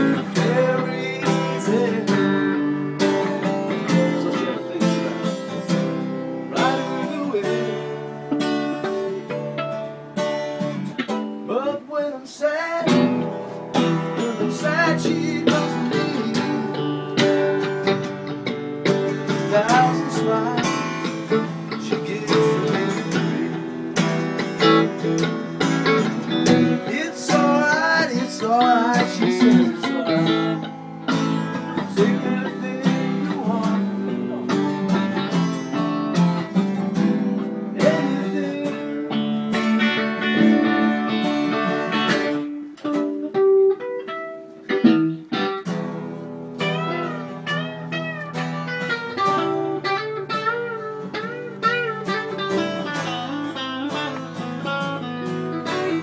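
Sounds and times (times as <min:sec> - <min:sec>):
electric guitar with sliding notes: 0:00.0 - 0:11.8, 0:12.8 - 0:56.0
acoustic guitar strumming: 0:00.0 - 0:56.0.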